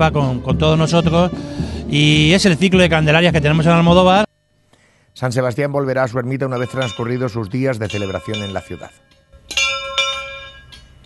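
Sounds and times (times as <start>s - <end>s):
small bell ringing: 6.5s - 11.0s.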